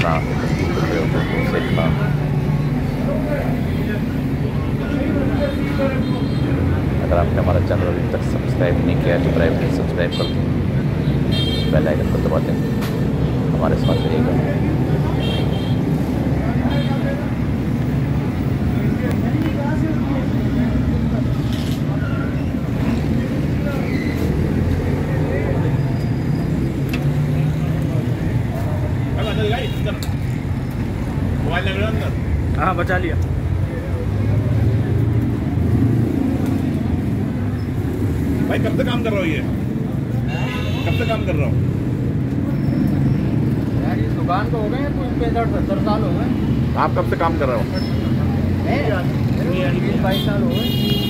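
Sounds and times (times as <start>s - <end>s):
voices murmuring: 0.0s - 51.0s.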